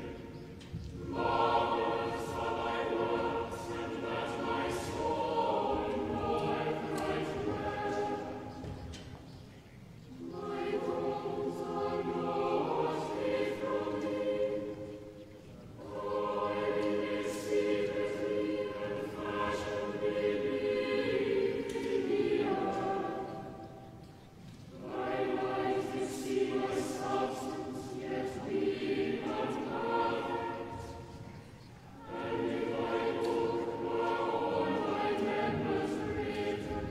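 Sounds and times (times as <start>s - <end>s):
choir singing: 0.0s - 36.9s.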